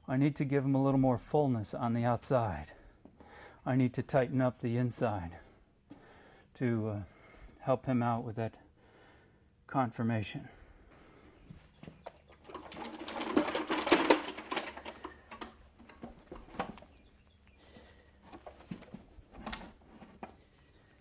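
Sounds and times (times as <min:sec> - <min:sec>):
shuffling on concrete floor: 0:10.9 - 0:20.9.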